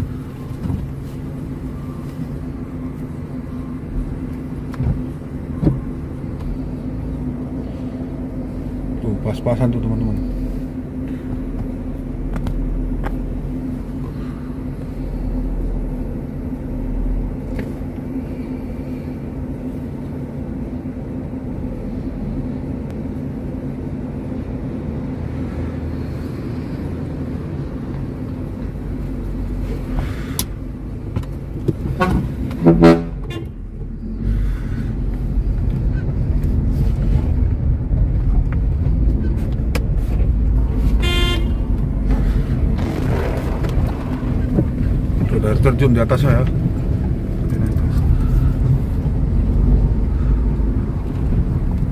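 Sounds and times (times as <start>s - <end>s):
vehicle engines running: 0.0s - 51.9s
car horn toots: 31.9s - 33.6s, 40.9s - 41.8s.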